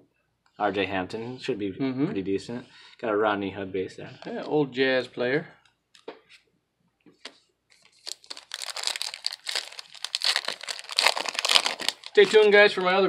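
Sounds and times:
foil wrapper tearing and crinkling: 7.8 - 13.0.

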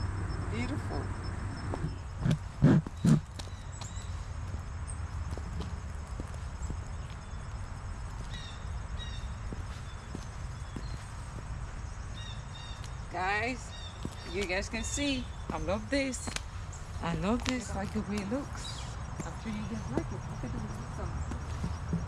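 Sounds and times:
wind rumble on microphone: 0.0 - 22.0
high heels clicking on asphalt: 1.7 - 8.5, 9.3 - 11.8, 13.7 - 18.5, 19.1 - 22.0.

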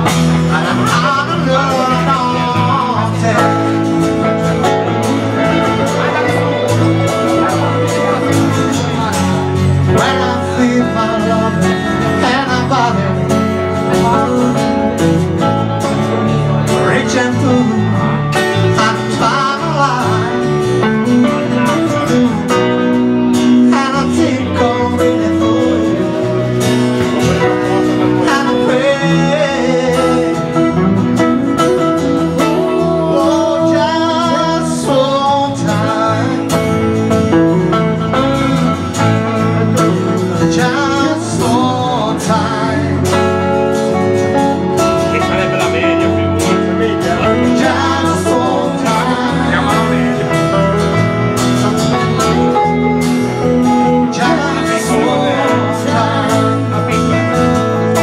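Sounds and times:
acoustic guitar strumming: 0.0 - 58.0
electric guitar backing: 0.0 - 58.0
person singing: 0.0 - 58.0.

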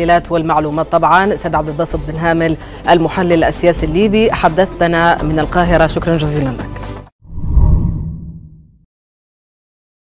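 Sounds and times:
low whoosh: 7.2 - 8.8.

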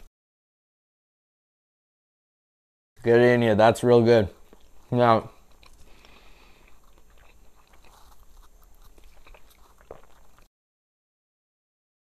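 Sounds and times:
chewing flaky pastry: 4.3 - 10.5.

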